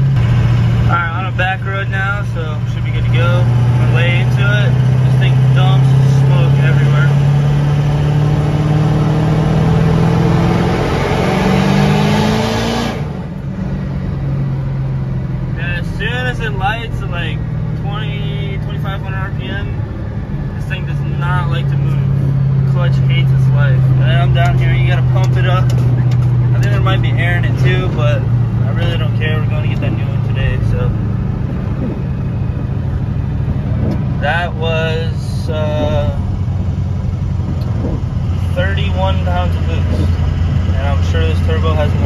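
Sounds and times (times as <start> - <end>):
diesel engine pulling hard: 0.0 - 42.0.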